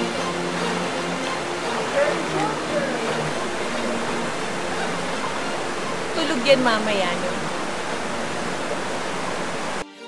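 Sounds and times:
river water rushing: 0.0s - 9.8s
soft music: 0.0s - 10.0s.

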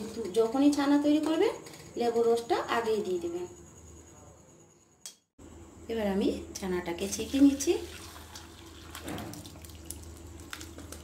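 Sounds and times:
liquid pouring and splashing: 7.8s - 11.0s.

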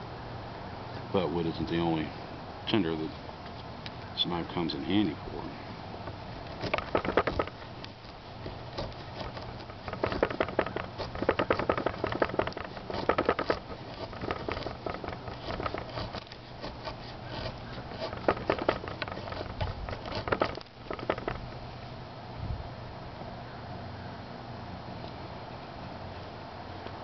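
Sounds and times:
knife scraping wooden stick: 6.5s - 21.4s.

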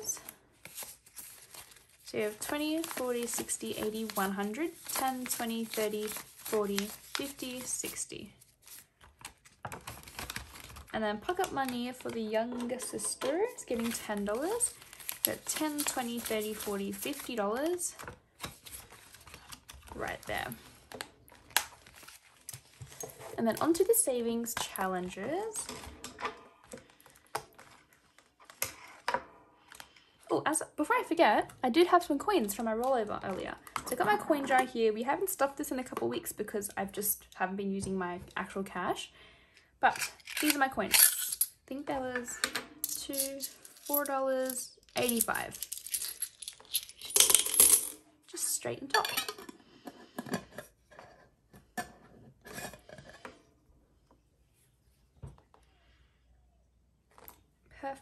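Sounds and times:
coins clinking in glass jar: 40.3s - 41.5s, 42.8s - 48.0s.

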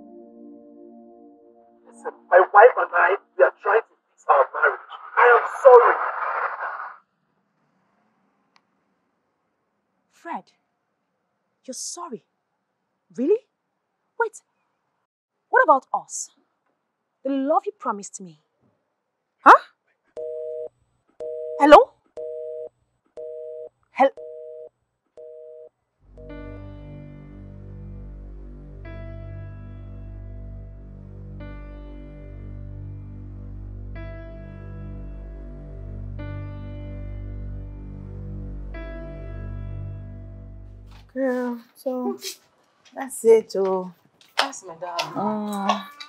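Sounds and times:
man talking over telephone: 1.9s - 7.0s.

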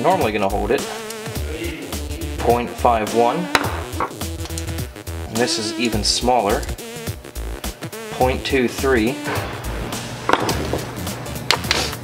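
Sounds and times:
background music with low beat: 0.0s - 12.0s
tool knocking on workbench: 3.6s - 4.2s, 10.3s - 10.8s.

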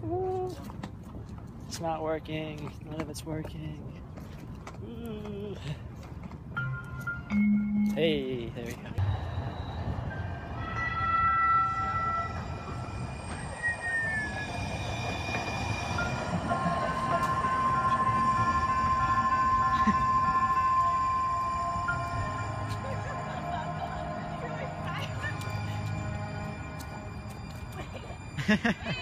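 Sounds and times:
tram passing on tracks: 5.8s - 29.0s.

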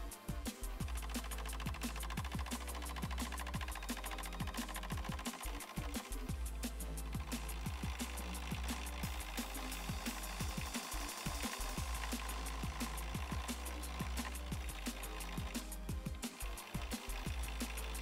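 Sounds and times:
background music with steady beat: 0.0s - 18.0s.

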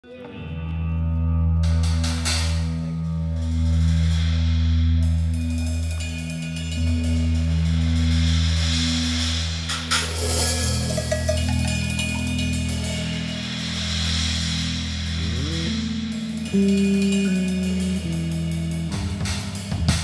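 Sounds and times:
cymbal washes: 3.5s - 20.0s
bass note sliding upward: 6.7s - 19.5s
live rock band playing: 9.6s - 20.0s
hand percussion hits: 9.7s - 13.9s.

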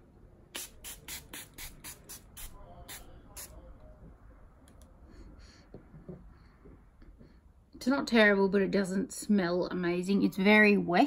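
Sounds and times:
spray bottle spritzes: 0.5s - 3.6s.

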